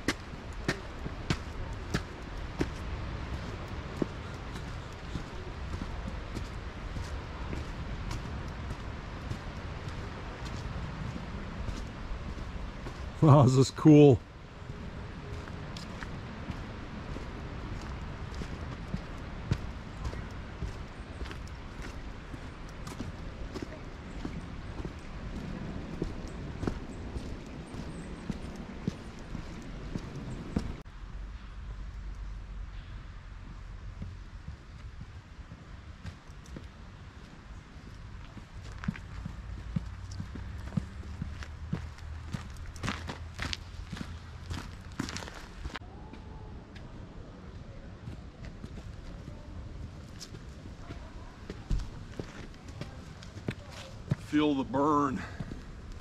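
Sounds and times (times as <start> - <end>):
steady low rumble: 14.2 - 56.0
footsteps on gravel: 15.3 - 30.8, 37.8 - 45.8, 50.0 - 56.0.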